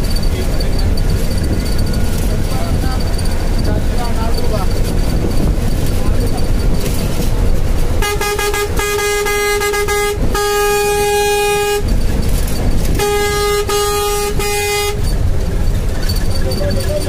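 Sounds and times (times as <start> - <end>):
road and engine rumble: 0.0 - 17.0
vehicle horn honking: 8.0 - 12.1, 12.8 - 15.3.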